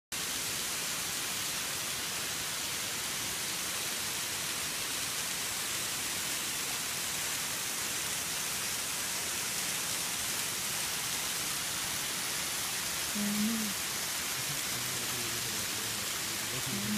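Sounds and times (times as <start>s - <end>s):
waterfall rushing and splashing: 0.2s - 16.9s.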